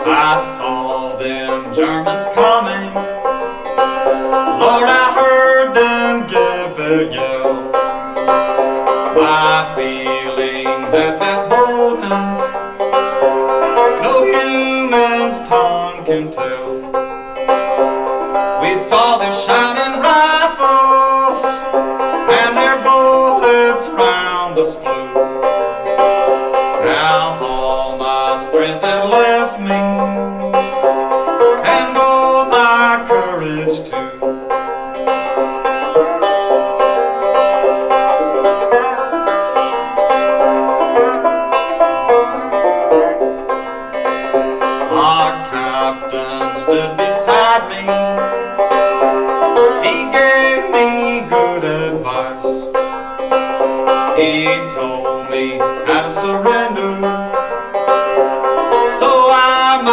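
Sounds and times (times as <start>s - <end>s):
banjo plucking: 0.0s - 59.9s.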